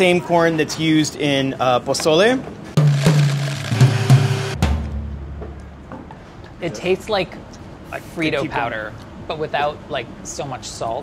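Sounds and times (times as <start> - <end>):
blender grinding: 2.8 - 4.6
music with drums and bass: 2.8 - 5.0.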